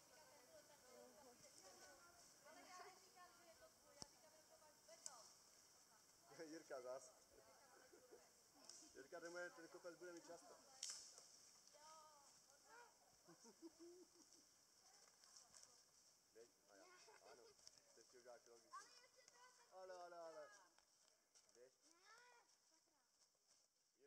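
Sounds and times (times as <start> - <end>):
faint high hiss: 0.0 - 21.7
distant children's voices: 11.7 - 13.2.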